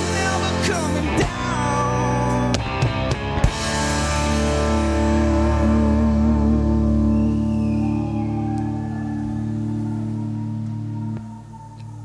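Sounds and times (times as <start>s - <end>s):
rock band playing: 0.0s - 11.7s.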